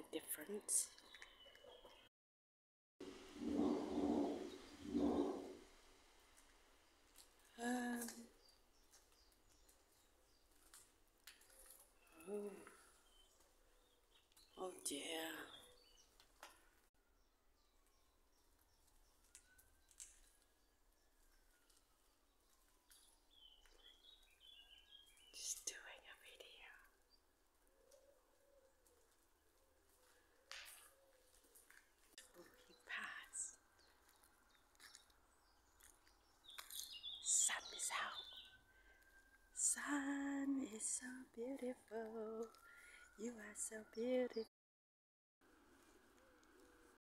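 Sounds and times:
pigeon cooing: 3.3s - 5.6s
faint whisper: 25.4s - 27.0s, 32.2s - 33.6s, 37.2s - 38.5s.

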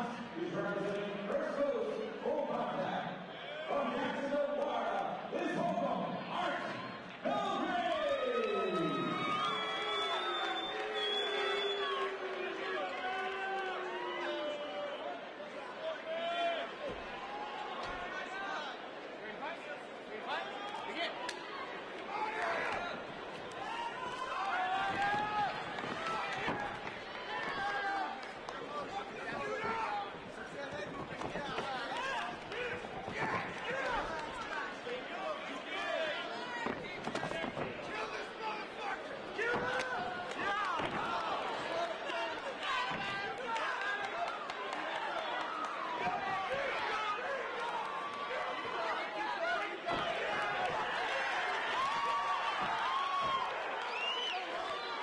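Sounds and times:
crowd noise: 0.0s - 55.0s.

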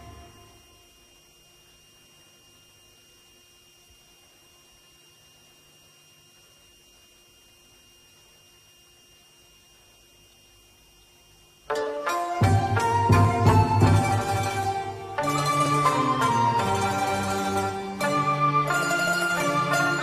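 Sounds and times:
faint steady hum and hiss: 0.0s - 20.0s.

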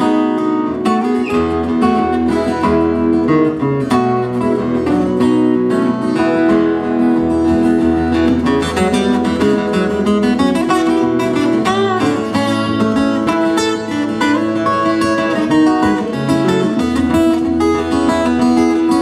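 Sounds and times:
acoustic guitars playing: 0.0s - 19.0s.

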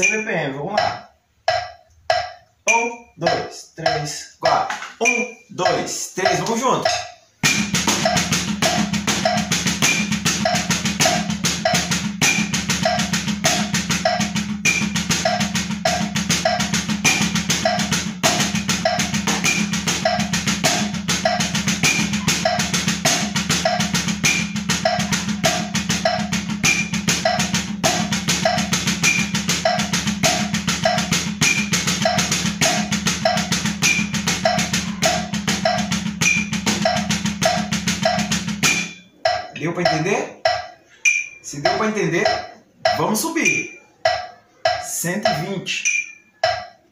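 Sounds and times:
backing beat: 0.0s - 46.9s
drumsticks on a practice pad: 0.0s - 46.9s.

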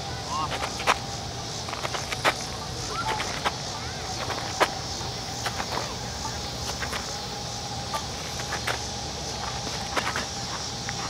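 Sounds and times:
high-pitched background hiss: 0.0s - 11.0s.

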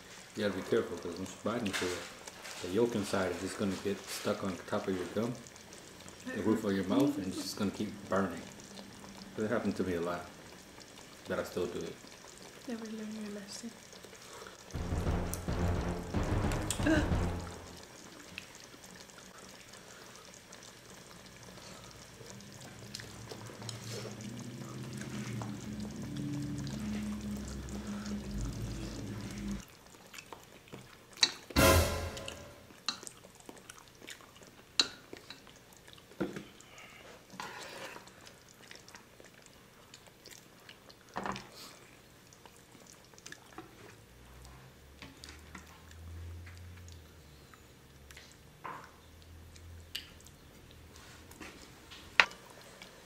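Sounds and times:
low droning background sound: 14.8s - 17.9s, 24.2s - 29.6s.

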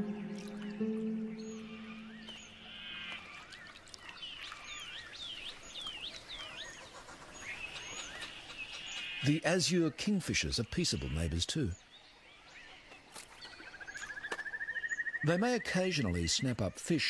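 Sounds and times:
high down-slurred bird chirps: 0.0s - 3.2s, 13.5s - 16.1s
bird trills and rising notes: 0.0s - 3.7s, 13.5s - 15.3s.

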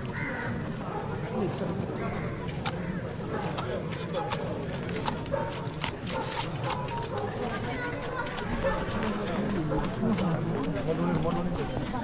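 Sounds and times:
crowd talking: 0.0s - 12.0s.

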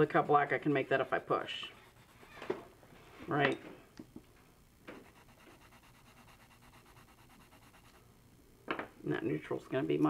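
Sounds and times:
pencil scratching on paper: 1.0s - 2.5s, 4.9s - 8.0s.

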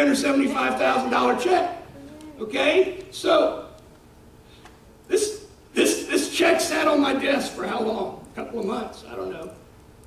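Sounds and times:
man speaking: 0.0s - 3.8s, 5.1s - 9.6s.

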